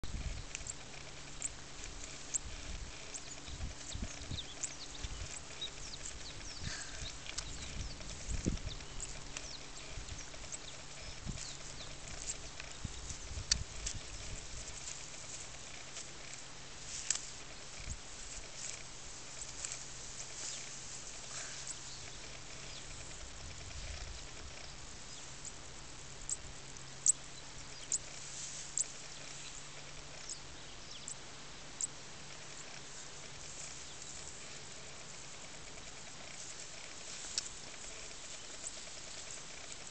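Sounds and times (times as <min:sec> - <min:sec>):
small clicks and rustles: 0:00.1 - 0:31.2, 0:31.8 - 0:39.9
sharp clicks: 0:00.3 - 0:20.7.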